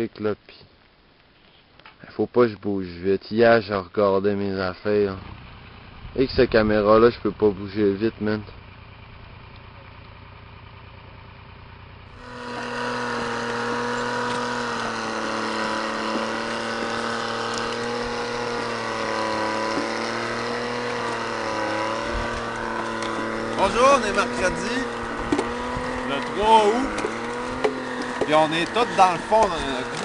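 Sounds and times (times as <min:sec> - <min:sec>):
vehicle engine running: 0:04.8 - 0:30.0.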